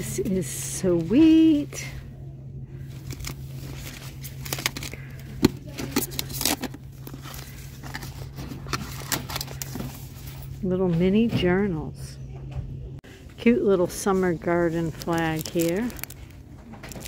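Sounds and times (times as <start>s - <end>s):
steady low hum: 0.0s - 17.0s
notebook pages rustling: 5.9s - 10.5s, 14.5s - 17.0s.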